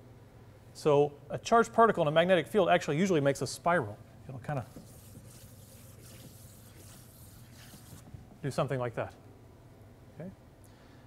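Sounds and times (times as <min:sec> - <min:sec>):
low room hum: 0:00.0 - 0:11.0
chalk scraping on blackboard: 0:04.5 - 0:08.2.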